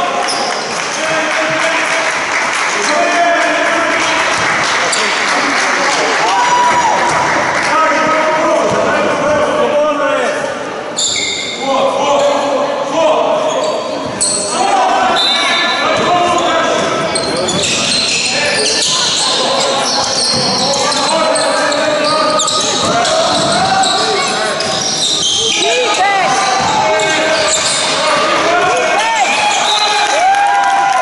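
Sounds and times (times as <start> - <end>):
players and spectators calling out: 0.0 - 31.0.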